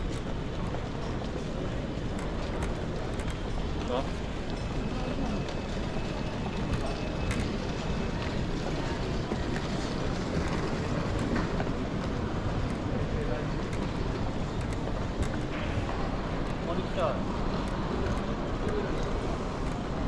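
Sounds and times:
murmur of distant voices: 0.1s - 20.0s
trolley rolling on tiled floor: 4.4s - 12.9s.

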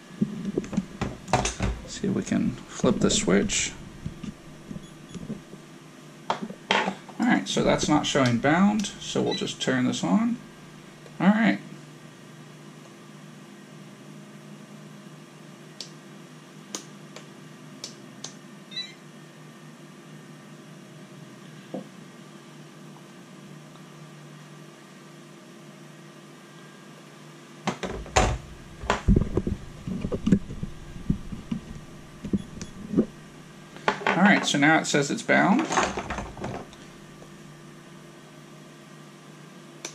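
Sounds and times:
low room hum: 0.0s - 39.9s
knocks and clunks on a workbench: 0.2s - 1.9s, 27.7s - 33.1s, 33.9s - 34.5s, 35.6s - 36.7s.

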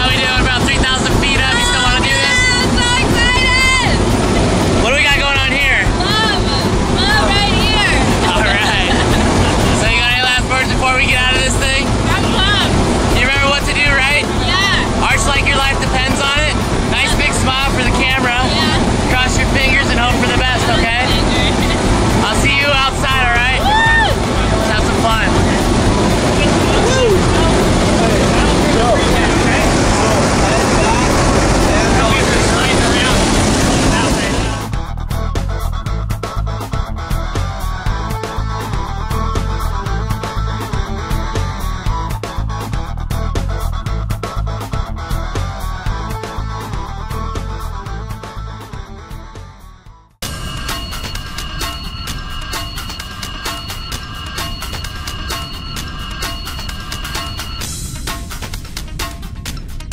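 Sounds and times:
voices talking: 0.0s - 34.7s
airplane engine and slipstream: 0.0s - 34.8s, 50.2s - 59.9s.

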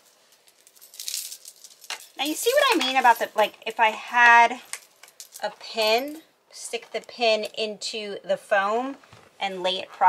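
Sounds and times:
metal chains jingling: 0.7s - 3.4s.

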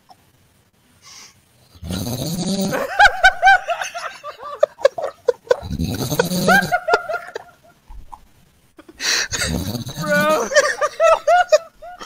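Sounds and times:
man laughing with high squeals: 2.7s - 7.8s, 9.1s - 12.0s.

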